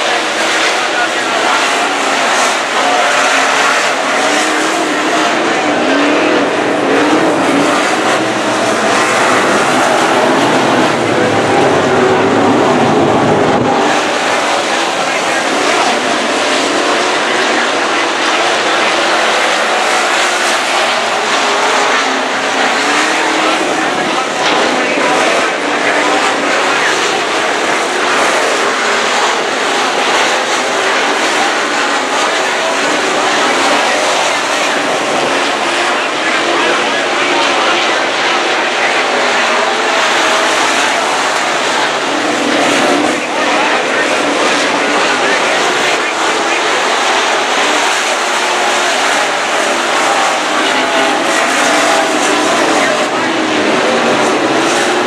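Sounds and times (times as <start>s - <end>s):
race car engines racing past: 0.0s - 55.0s.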